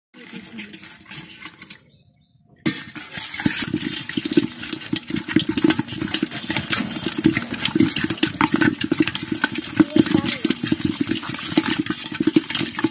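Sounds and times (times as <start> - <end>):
fish thrashing in a pot: 0.2 - 2.0, 2.6 - 12.9.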